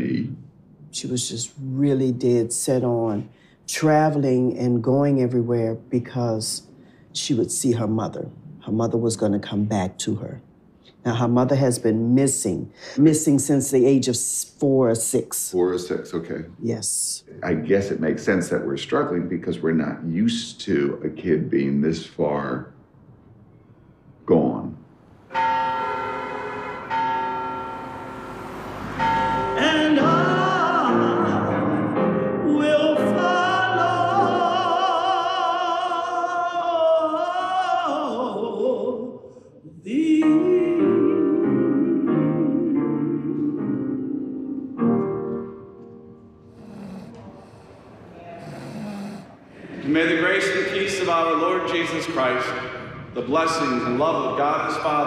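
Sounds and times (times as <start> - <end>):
man speaking: 0.0 - 0.4, 15.5 - 16.6, 17.2 - 22.7, 49.6 - 55.0
church bell tolling: 25.2 - 31.4
person singing: 29.4 - 43.9
person snoring: 46.6 - 49.6.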